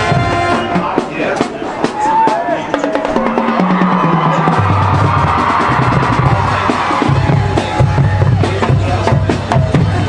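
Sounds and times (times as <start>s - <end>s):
sustained upper brass: 0.0s - 1.0s
low brass: 0.0s - 1.1s
drumline percussion ticking: 0.0s - 10.0s.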